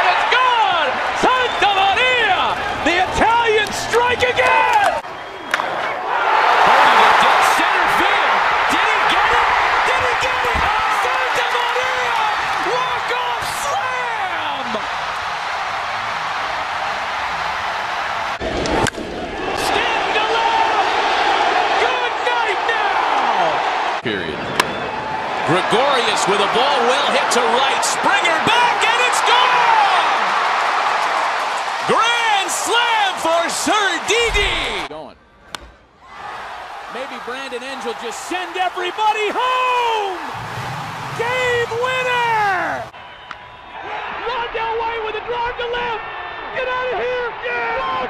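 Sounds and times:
broadcaster shouting excitedly: 0:00.0 - 0:05.0, 0:06.6 - 0:14.9, 0:21.7 - 0:23.6, 0:25.5 - 0:30.3, 0:31.9 - 0:34.9, 0:36.9 - 0:40.4, 0:41.1 - 0:42.9, 0:44.2 - 0:48.0
crowd cheering loudly: 0:00.0 - 0:34.9, 0:36.0 - 0:48.0.

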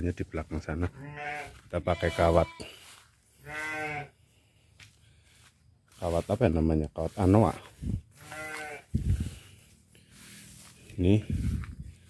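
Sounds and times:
sheep bleating: 0:00.8 - 0:04.2, 0:08.2 - 0:09.0.

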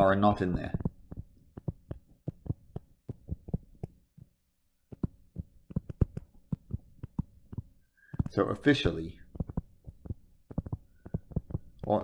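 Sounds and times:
stylus tapping on glass screen: 0:00.0 - 0:04.3, 0:04.9 - 0:08.4, 0:09.2 - 0:12.0.

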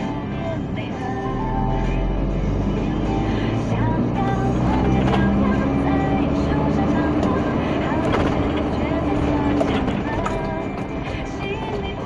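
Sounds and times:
vehicle driving rumble: 0:00.0 - 0:12.0.

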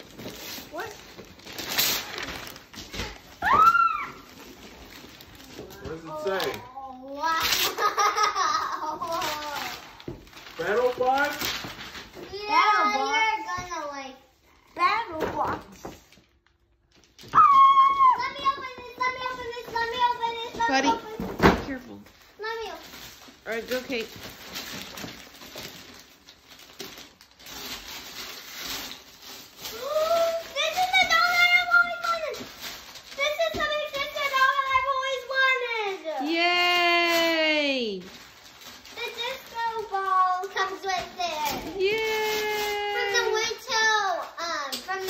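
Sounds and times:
wrapping paper rustling and tearing: 0:00.0 - 0:14.1, 0:15.4 - 0:45.0
children laughing: 0:07.6 - 0:09.6.

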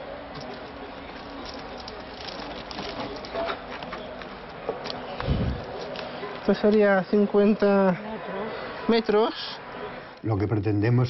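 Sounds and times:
low background noise: 0:00.0 - 0:11.0
garden hoses rustling and clicking: 0:00.3 - 0:06.9.

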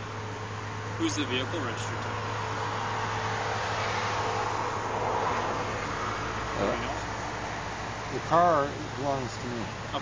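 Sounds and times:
vehicle engine hum: 0:00.0 - 0:10.0.

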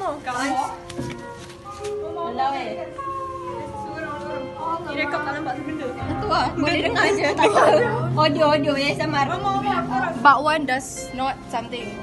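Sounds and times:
music with sliding tones: 0:00.0 - 0:12.0
voices: 0:00.0 - 0:12.0.

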